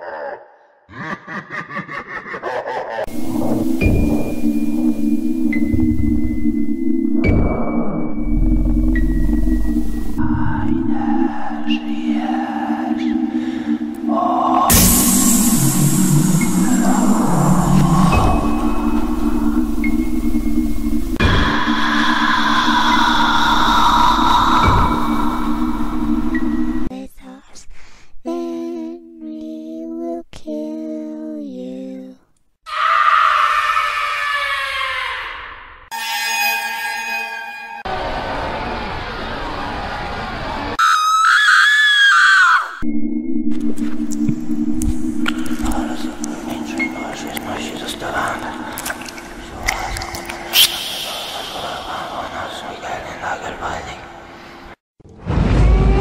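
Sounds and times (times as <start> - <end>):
low droning horror music: 3.1 - 26.9, 42.8 - 56.0
hissing noise wash: 13.7 - 26.9, 45.0 - 54.8
piercing high-pitched scream: 14.2 - 19.9, 21.2 - 26.2, 32.7 - 39.0, 40.8 - 42.8, 50.2 - 52.4.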